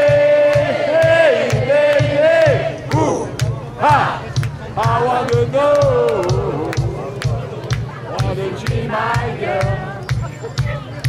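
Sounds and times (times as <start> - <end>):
man singing and shouting: 0.0 - 4.0
drum and bass beat: 0.0 - 11.0.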